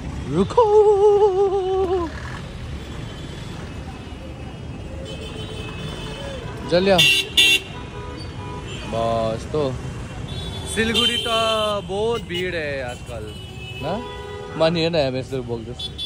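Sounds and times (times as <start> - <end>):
street traffic rumbling: 0.0 - 16.0.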